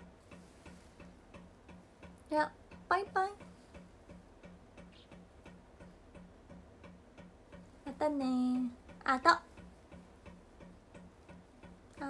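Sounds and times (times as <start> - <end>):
faint low popping in pipe: 0.0 - 12.0.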